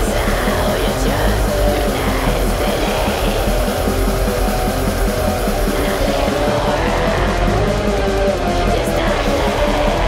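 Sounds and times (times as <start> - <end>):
black metal music: 0.0 - 10.0.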